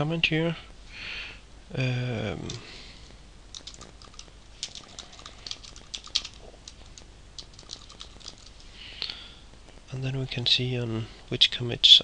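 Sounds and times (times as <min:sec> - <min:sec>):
typing on keyboard: 0:03.5 - 0:08.7.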